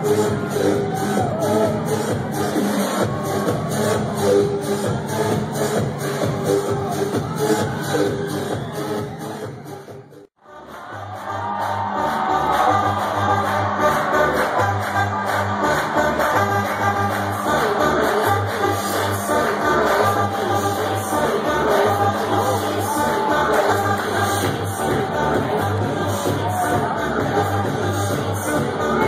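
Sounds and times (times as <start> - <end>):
electronic dance music: 0.0 - 29.0
pulsing bass line: 0.0 - 29.0.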